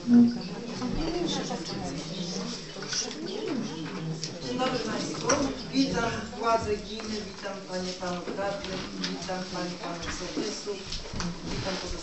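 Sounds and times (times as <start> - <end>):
murmur of people talking quietly: 0.0 - 12.0.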